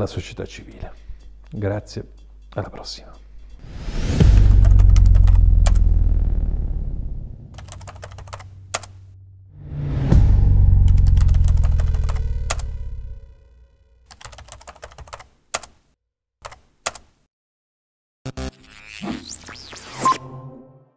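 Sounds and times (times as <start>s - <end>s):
deep rumbling boom: 4.2s - 7.6s, 9.1s - 13.8s.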